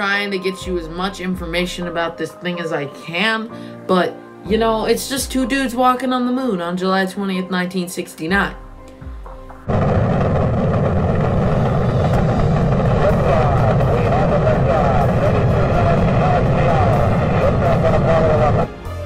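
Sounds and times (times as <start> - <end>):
rocket engines rumbling: 9.7 - 18.7.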